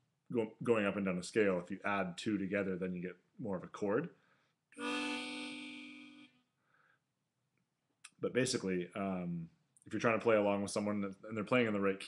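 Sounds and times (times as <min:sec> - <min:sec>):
harmonica chord: 0:04.8 - 0:06.5.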